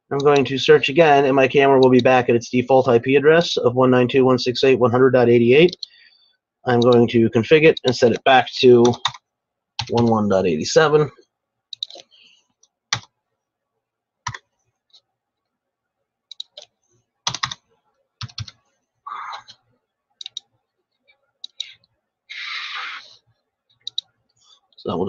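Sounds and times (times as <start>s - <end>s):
computer keyboard keystrokes: 17.3s - 17.6s, 18.2s - 18.6s.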